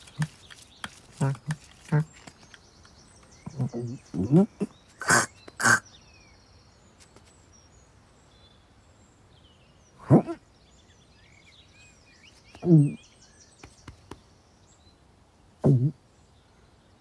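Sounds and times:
faint birdsong: 0:00.0 - 0:17.0
person making cat vocal sounds: 0:03.5 - 0:05.8, 0:10.0 - 0:10.4, 0:12.6 - 0:13.0, 0:15.6 - 0:16.0.

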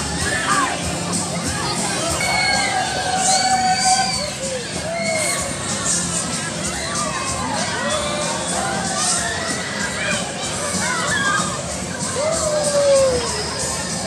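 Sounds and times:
children shouting: 0:00.0 - 0:14.0
crowd noise: 0:00.0 - 0:14.0.

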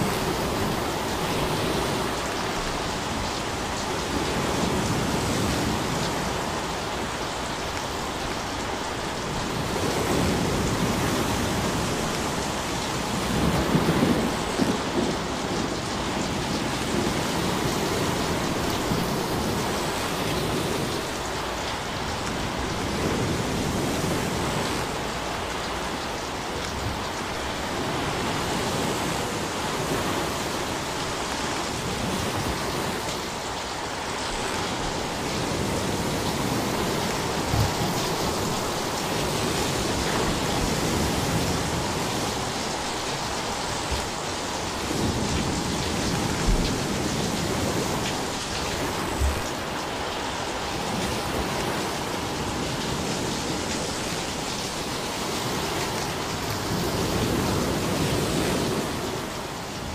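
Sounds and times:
waves washing up a shore: 0:00.0 - 0:59.9.

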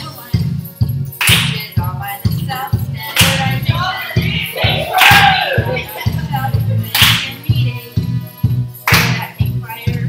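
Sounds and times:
dance music with steady beat: 0:00.0 - 0:10.0.

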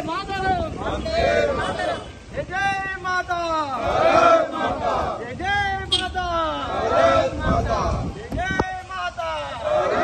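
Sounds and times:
crowd chanting call and response: 0:00.2 - 0:02.8, 0:03.4 - 0:10.0.

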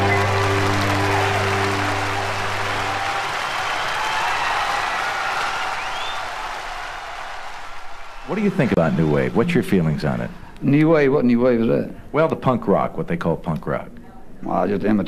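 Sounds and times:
short rising whistles: 0:00.0 - 0:06.4
audience applause and cheering: 0:00.0 - 0:10.5.

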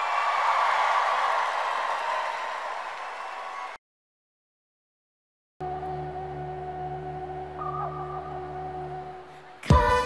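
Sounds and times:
synthesizer drone chord: 0:05.6 - 0:09.7.

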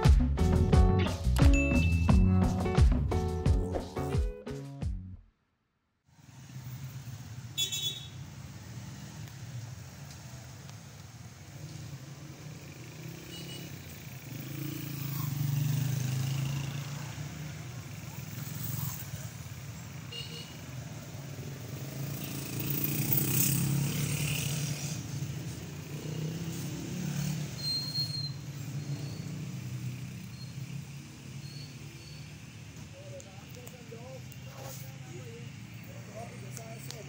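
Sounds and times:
car engines and tyres passing: 0:06.1 - 0:37.0.

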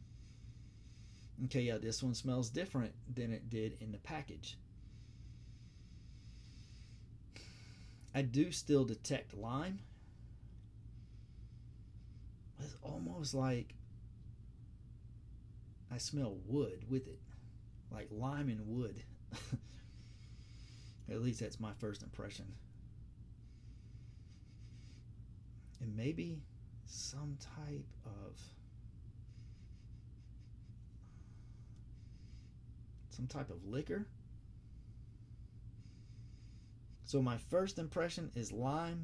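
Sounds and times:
faint steady hiss: 0:00.0 - 0:39.0
low hum: 0:00.0 - 0:39.0
long nasal sniff: 0:29.2 - 0:32.6.

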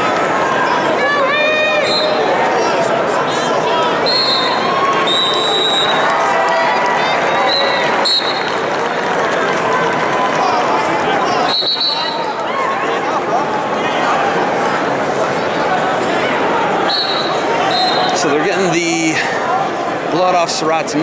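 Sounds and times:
crowd talking and shouting: 0:00.0 - 0:21.0
referee whistle blasts: 0:04.0 - 0:06.0, 0:07.4 - 0:08.5, 0:11.5 - 0:12.3, 0:16.9 - 0:18.2.

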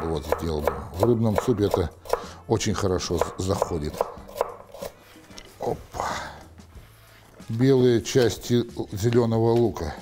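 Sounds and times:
knife chopping on wooden board: 0:00.0 - 0:02.3, 0:03.1 - 0:05.0.

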